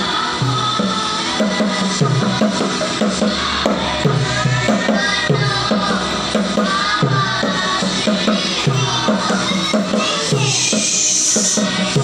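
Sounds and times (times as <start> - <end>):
music with melody: 0.0 - 12.0.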